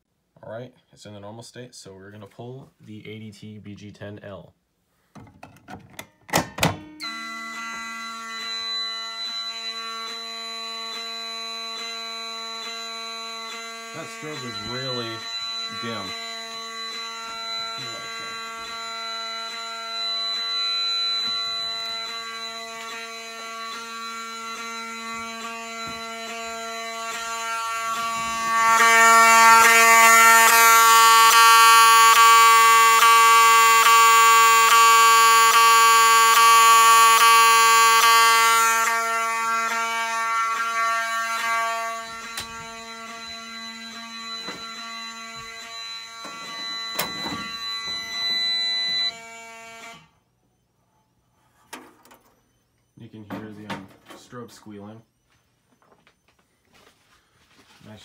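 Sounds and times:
fire alarm horn buzzing: 0:06.9 - 0:58.0.

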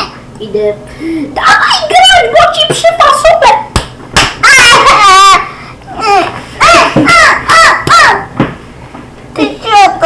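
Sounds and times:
child shrieking: 0:04.4 - 0:08.3
child wailing: 0:04.4 - 0:08.3.

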